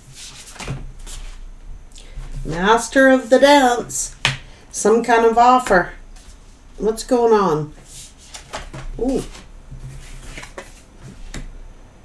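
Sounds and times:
cards tapping and sliding: 0:00.3 - 0:00.8, 0:08.0 - 0:11.5.

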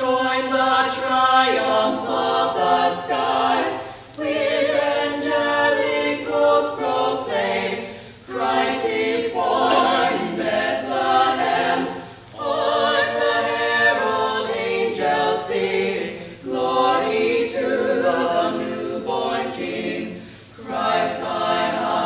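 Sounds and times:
mixed choir singing unaccompanied: 0:00.0 - 0:22.0.

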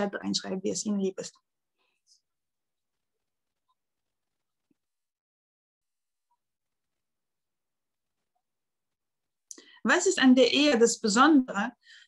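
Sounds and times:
woman speaking: 0:00.0 - 0:01.4, 0:09.8 - 0:11.8.

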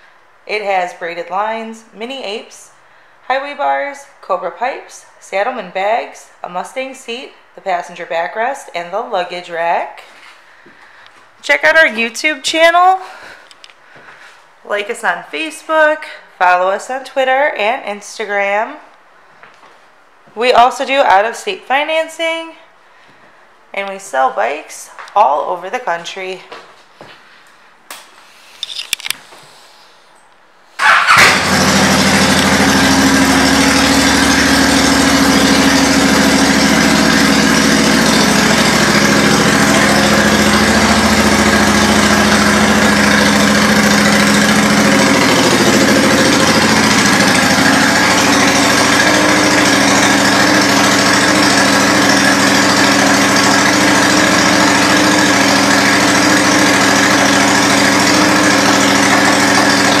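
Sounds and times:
motorcycle engine starting and idling: 0:30.8 - 1:00.0.

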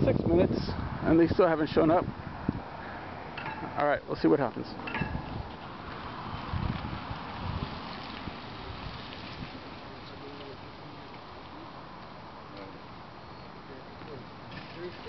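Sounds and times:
wind hiss: 0:00.0 - 0:15.0
distant street noise: 0:00.8 - 0:15.0.

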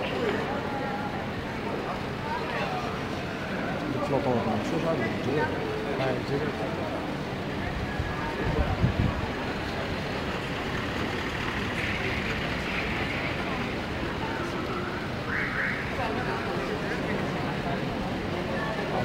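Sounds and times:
cars driving slowly past: 0:00.0 - 0:19.0
people talking: 0:00.0 - 0:19.0.

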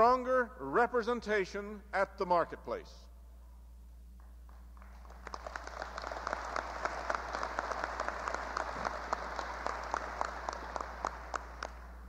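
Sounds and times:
constant low hum: 0:00.0 - 0:12.0
audience clapping: 0:04.2 - 0:12.0.

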